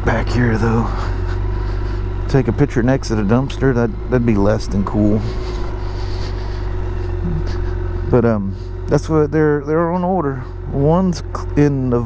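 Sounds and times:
motorcycle engine humming low: 0.0 - 12.0.

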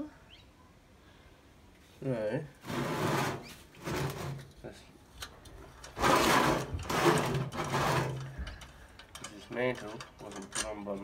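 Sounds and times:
metal lantern cap rattling and scraping: 5.4 - 11.0.

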